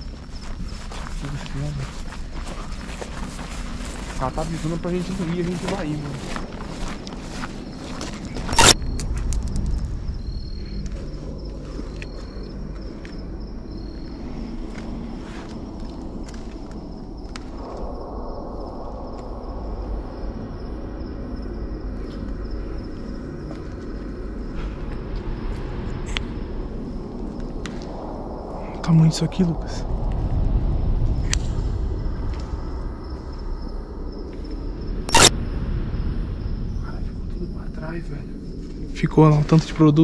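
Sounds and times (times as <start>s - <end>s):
footsteps on rough floor: 0.0s - 9.9s
faint high whine: 6.8s - 15.8s, 33.6s - 38.7s
clicks: 8.5s - 8.8s, 35.1s - 35.3s.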